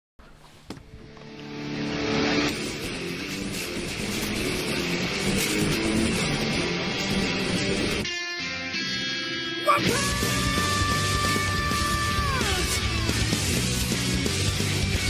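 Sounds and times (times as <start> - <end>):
heavy rock music: 1.1 - 15.0.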